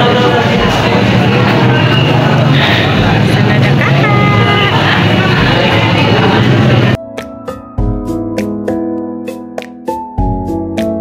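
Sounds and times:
background music: 0:06.8 - 0:11.0.

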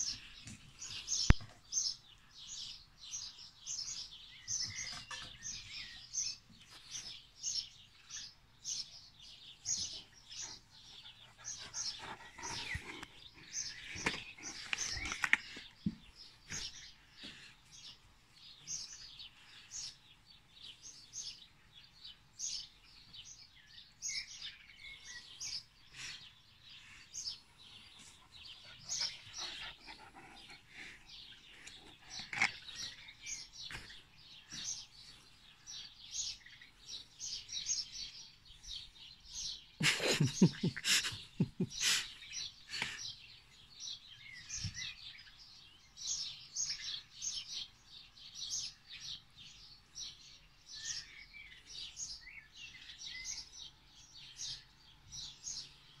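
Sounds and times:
small birds chirping: 0:00.0 - 0:56.0.

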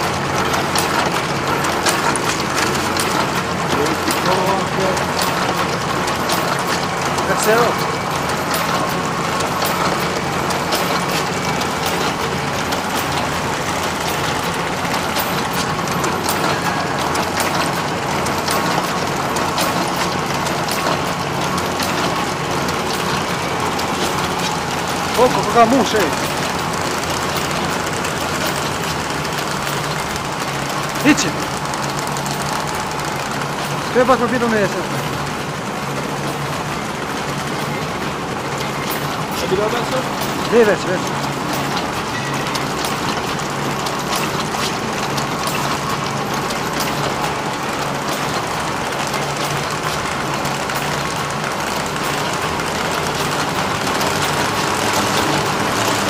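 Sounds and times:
machine mechanical clatter: 0:00.0 - 0:56.0
sharp machine clicks: 0:00.0 - 0:56.0.

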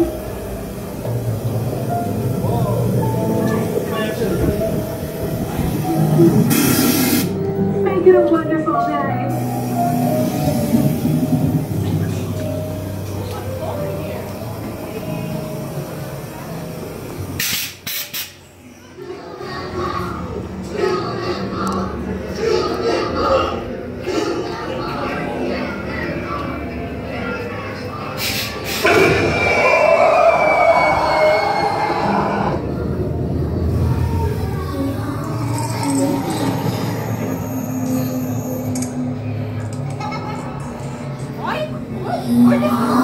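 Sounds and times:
indistinct voices: 0:00.0 - 0:17.4, 0:18.4 - 0:43.0
sustained eerie tones: 0:00.0 - 0:17.4, 0:28.8 - 0:43.0
short sharp hiss bursts: 0:06.5 - 0:07.4, 0:17.4 - 0:18.4.

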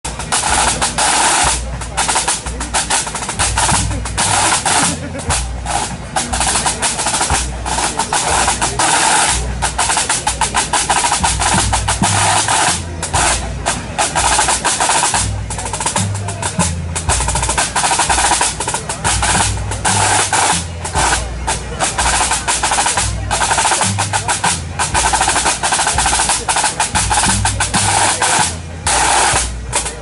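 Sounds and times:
snare drum rolls: 0:00.0 - 0:30.0
tenor and bass drums beating: 0:00.0 - 0:30.0.

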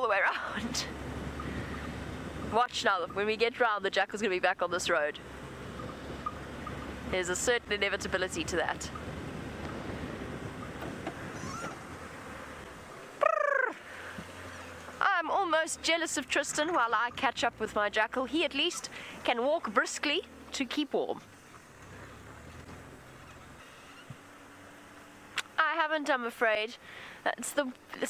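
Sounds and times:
vehicle engine and tyre rumble: 0:00.0 - 0:28.0
wind noise on microphone: 0:09.0 - 0:12.0.

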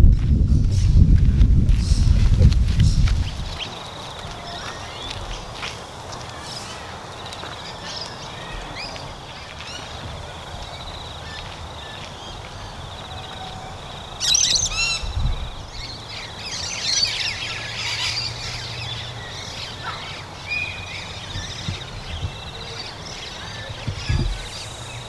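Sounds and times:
wild birds chirping: 0:01.8 - 0:25.0.

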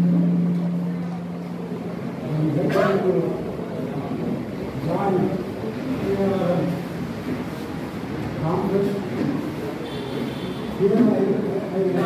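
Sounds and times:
low-pitched hum: 0:00.0 - 0:02.5.

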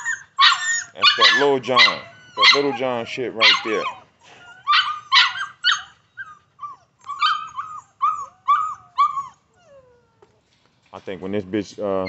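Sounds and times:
puppy whining and yipping: 0:00.0 - 0:10.3.

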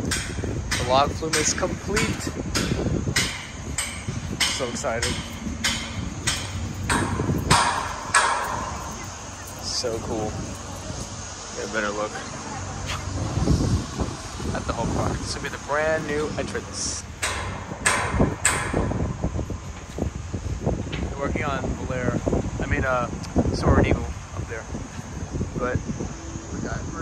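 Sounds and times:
sharp knocks: 0:00.0 - 0:09.3, 0:16.0 - 0:19.5
sharp metal clanks: 0:00.0 - 0:10.3, 0:15.8 - 0:19.3
excavator engine rumble: 0:00.0 - 0:22.6.

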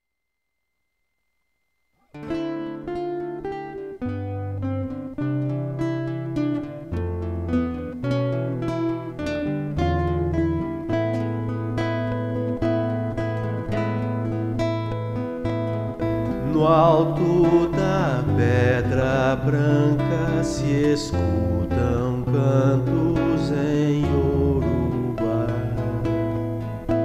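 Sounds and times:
acoustic guitar plucking chords: 0:02.1 - 0:27.0.

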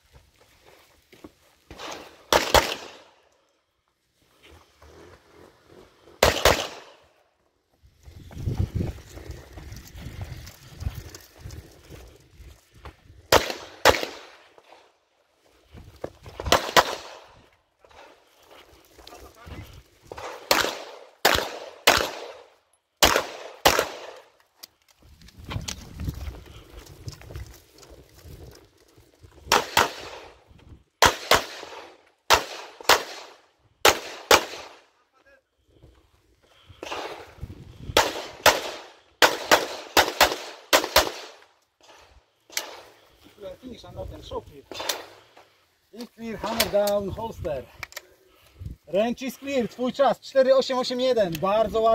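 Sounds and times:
pistol shots with echo: 0:01.8 - 0:03.0, 0:06.2 - 0:07.0, 0:13.3 - 0:14.4, 0:20.3 - 0:24.2, 0:31.0 - 0:33.3.

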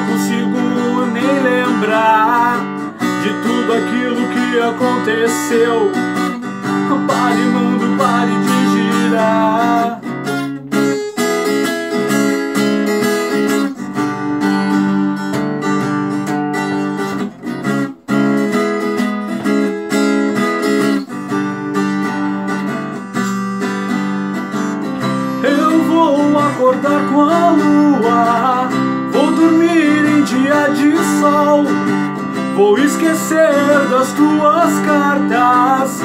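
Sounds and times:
person singing: 0:00.0 - 0:10.2, 0:24.6 - 0:36.0
strummed acoustic guitar: 0:00.0 - 0:36.0
harmonica holding chords: 0:21.1 - 0:36.0.

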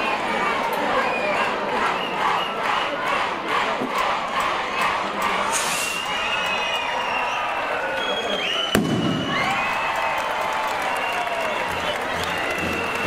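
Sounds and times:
crowd cheering and shouting: 0:00.0 - 0:13.0
firework rocket bang: 0:08.7 - 0:09.6.

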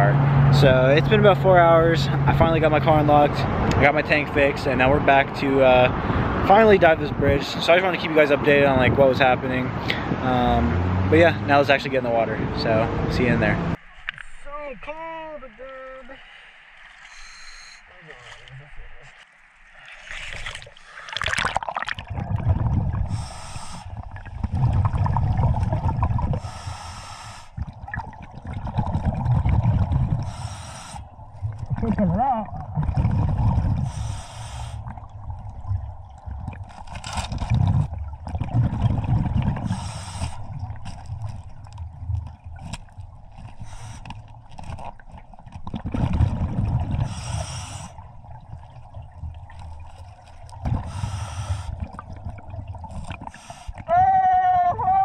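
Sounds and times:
regulator hissing inhale: 0:16.2 - 0:17.9, 0:23.1 - 0:24.0, 0:26.4 - 0:27.6, 0:30.2 - 0:31.0, 0:33.9 - 0:34.9, 0:39.6 - 0:40.4, 0:43.6 - 0:44.1, 0:47.0 - 0:48.0, 0:50.8 - 0:51.9, 0:53.3 - 0:53.8
exhaled bubbles gurgling: 0:19.8 - 0:54.0.

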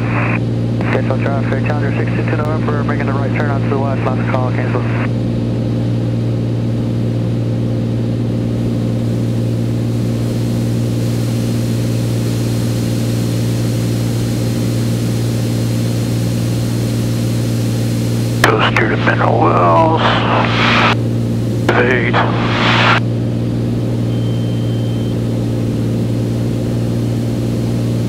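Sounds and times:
propeller plane engine droning: 0:00.0 - 0:28.0
person speaking: 0:18.4 - 0:21.0, 0:21.7 - 0:23.0.

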